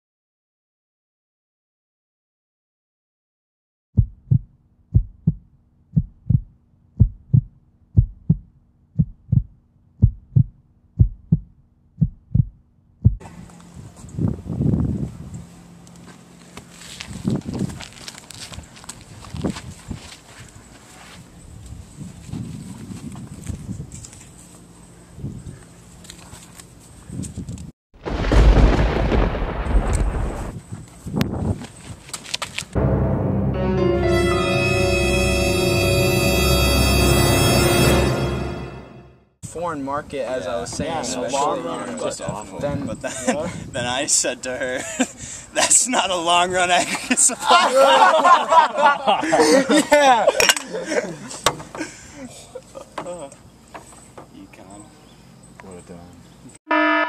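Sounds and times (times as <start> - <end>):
heartbeat double thump: 4.0 - 13.2
loud low rumbling: 32.8 - 39.1.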